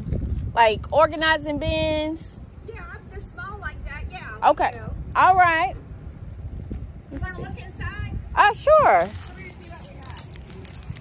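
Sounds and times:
footsteps on pavement: 0.0s - 1.2s
keys jangling: 8.9s - 11.0s.

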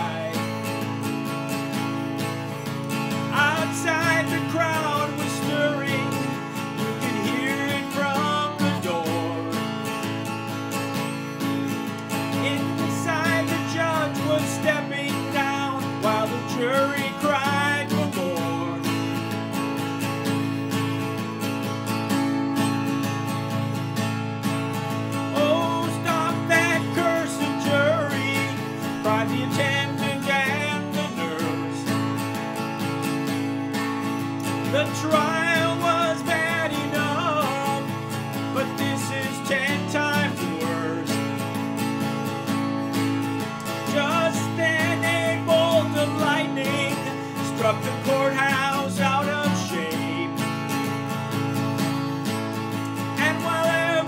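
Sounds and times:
man singing: 0.0s - 1.1s, 2.9s - 10.2s, 12.3s - 19.2s, 25.3s - 32.2s, 34.4s - 41.7s, 43.6s - 51.0s, 52.9s - 54.0s
acoustic guitar strumming: 0.0s - 54.0s.

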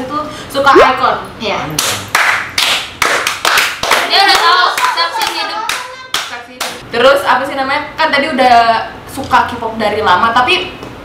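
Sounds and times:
hand claps: 1.8s - 6.8s.

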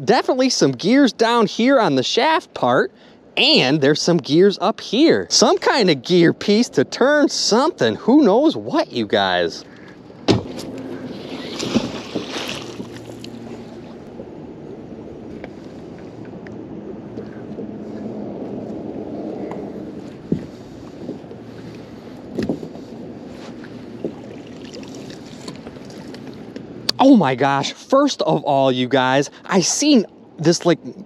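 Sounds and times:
water moving along hull: 0.5s - 27.6s
sharp knocks against boat: 10.2s - 13.0s
rope being hauled in: 10.5s - 13.2s.

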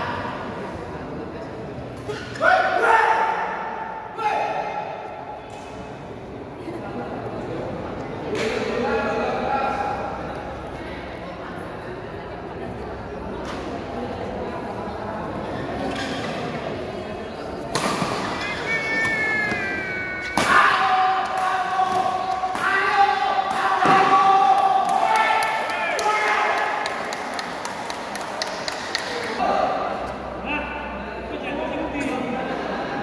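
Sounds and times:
people shouting: 2.3s - 4.9s, 18.5s - 26.8s
racket striking shuttlecock: 17.7s - 22.8s.

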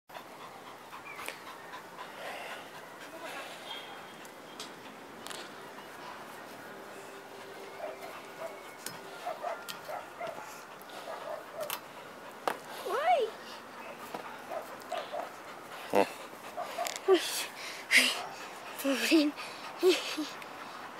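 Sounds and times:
small dog panting: 0.1s - 20.9s.

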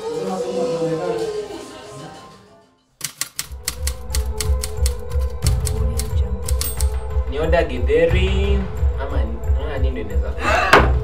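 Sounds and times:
background music: 0.0s - 11.0s
typewriter key clicks: 3.0s - 7.0s
music with deep bass: 4.3s - 11.0s.

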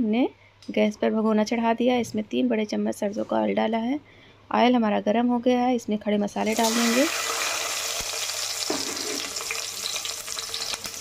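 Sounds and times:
spices sizzling in hot oil: 6.4s - 11.0s.

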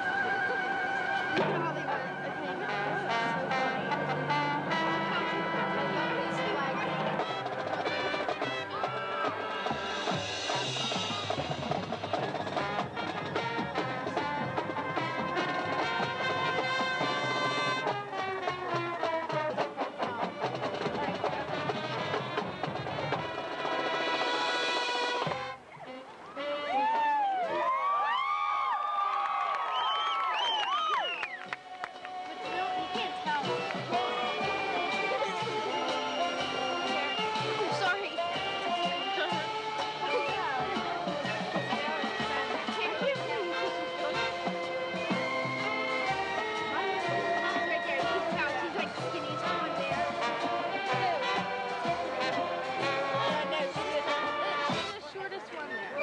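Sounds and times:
brass chords: 0.0s - 27.0s, 31.5s - 55.3s
marching band playing: 0.0s - 27.8s, 30.2s - 56.0s
drum hits: 2.7s - 25.6s.

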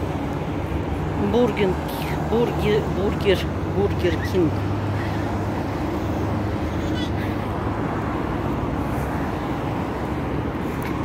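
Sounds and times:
city road traffic: 0.0s - 11.0s.

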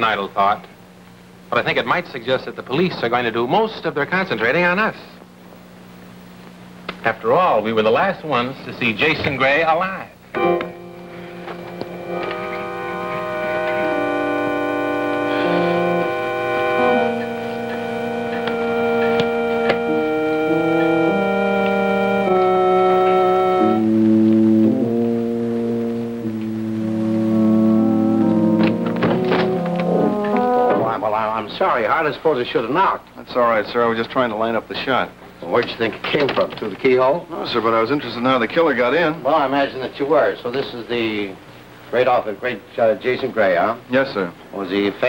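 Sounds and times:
organ chords: 10.2s - 31.6s
person talking: 30.7s - 33.7s.

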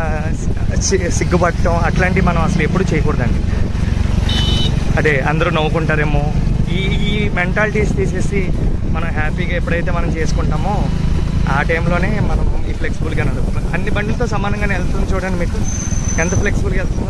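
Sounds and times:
motorcycles rumbling: 0.0s - 17.0s
person speaking: 0.0s - 17.0s.

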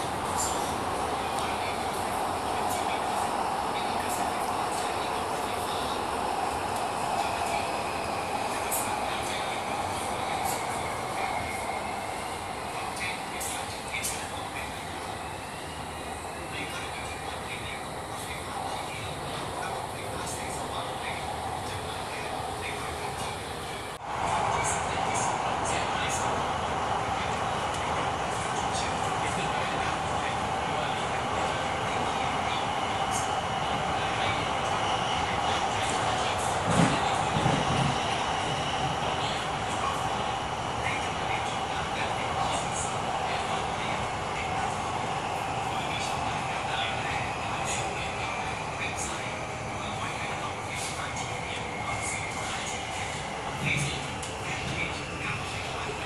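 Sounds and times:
train car rumble: 0.0s - 56.0s.

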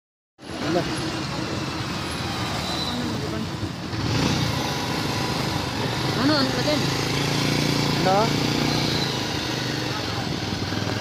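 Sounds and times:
road traffic noise: 0.4s - 11.0s.

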